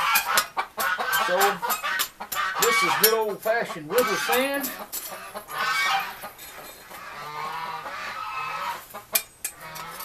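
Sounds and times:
geese honking: 0:00.0 - 0:10.0.

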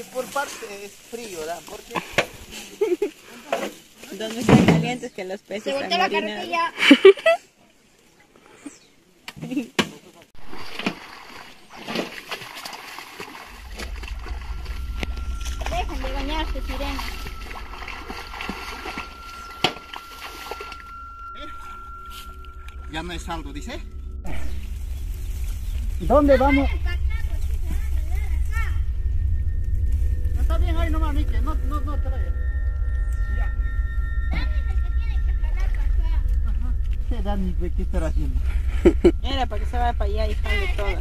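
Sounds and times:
laughter: 0:02.5 - 0:03.4, 0:06.8 - 0:07.5, 0:38.7 - 0:39.2
sharp water slap: 0:10.4 - 0:13.5
water splashing from swimming: 0:10.4 - 0:14.8, 0:16.6 - 0:20.9
voices: 0:13.6 - 0:41.0.

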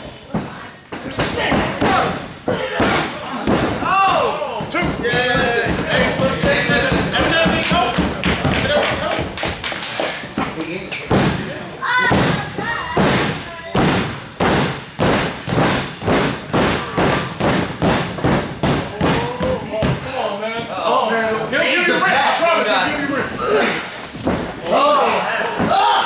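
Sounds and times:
thumping on a wrestling ring: 0:00.3 - 0:09.6, 0:10.3 - 0:11.5, 0:12.1 - 0:20.0, 0:24.1 - 0:24.6, 0:25.5 - 0:26.0.

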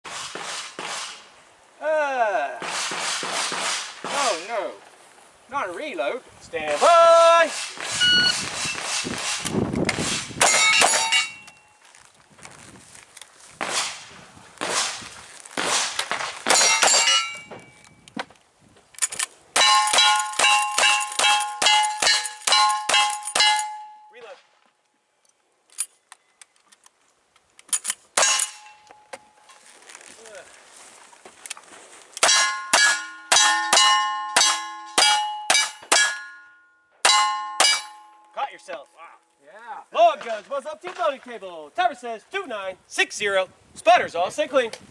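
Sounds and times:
gunshots: 0:00.1 - 0:01.2, 0:02.6 - 0:04.4, 0:06.7 - 0:11.1, 0:13.6 - 0:15.0, 0:15.6 - 0:17.3
steel target ringing ding: 0:10.5 - 0:11.7, 0:16.6 - 0:17.8, 0:19.6 - 0:24.1, 0:32.2 - 0:38.2.

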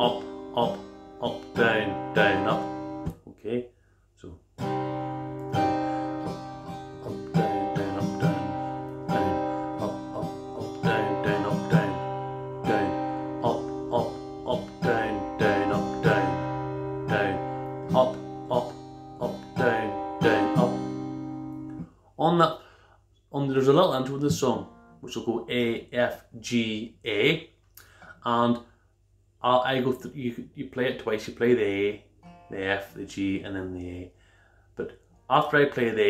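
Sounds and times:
acoustic guitar strumming: 0:00.0 - 0:03.3, 0:04.6 - 0:21.9, 0:23.7 - 0:25.8, 0:31.9 - 0:33.5.

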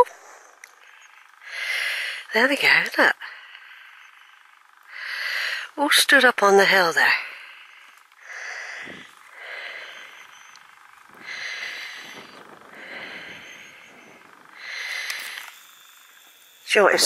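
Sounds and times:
person breathing noisily: 0:00.0 - 0:02.3, 0:03.2 - 0:05.8, 0:07.2 - 0:16.2.

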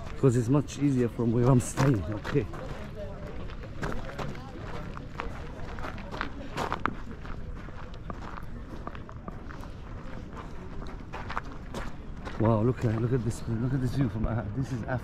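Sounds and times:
footsteps crunching on gravel: 0:01.3 - 0:13.2.

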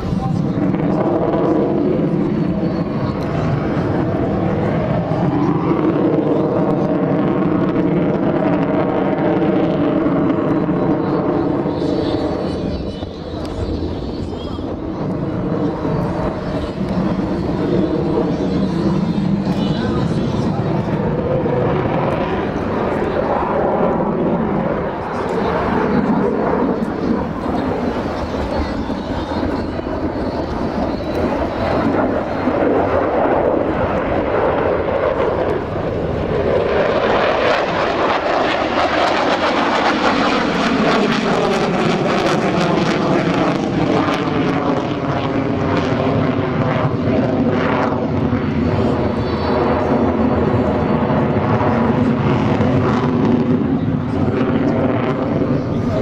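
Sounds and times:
fighter jet roaring: 0:00.0 - 0:56.0.

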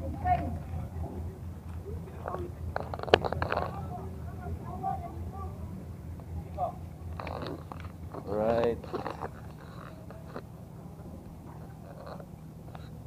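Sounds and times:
ferry machinery hum: 0:00.0 - 0:13.0
voices talking: 0:00.0 - 0:13.0.

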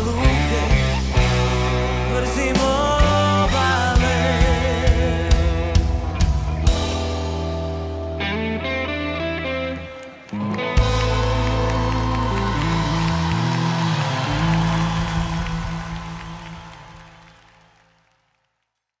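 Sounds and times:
live rock band playing: 0:00.0 - 0:17.1.

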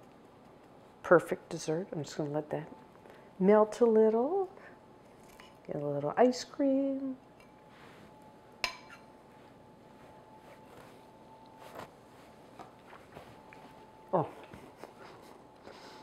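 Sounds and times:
spoon tapping in bowl: 0:08.6 - 0:09.0
metal spoon clinking ceramic bowl: 0:08.6 - 0:09.1.

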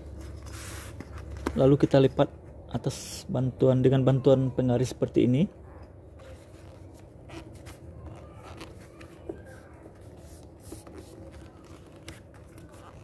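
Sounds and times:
paper rustling and scraping: 0:00.1 - 0:01.6, 0:06.2 - 0:13.0.

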